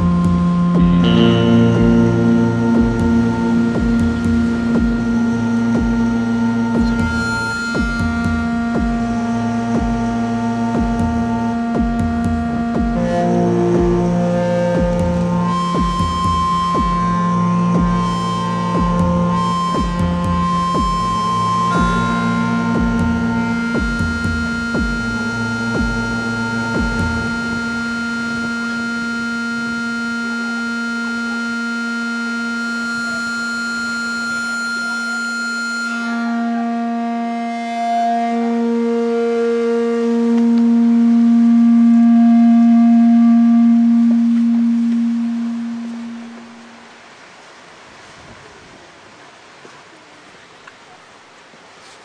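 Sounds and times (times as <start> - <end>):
low electronic drone: 0.0 - 47.2
faint hiss: 32.6 - 52.0.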